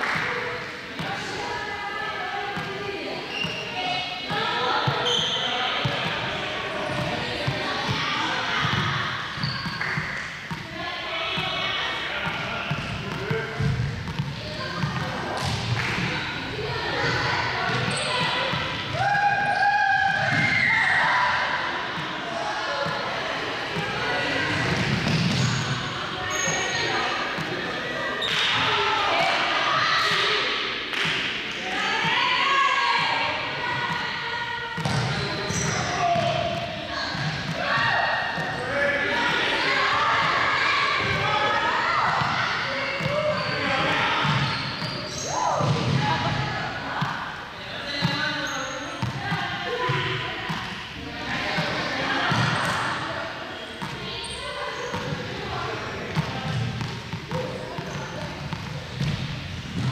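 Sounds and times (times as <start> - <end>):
people talking: 0.0 - 59.9.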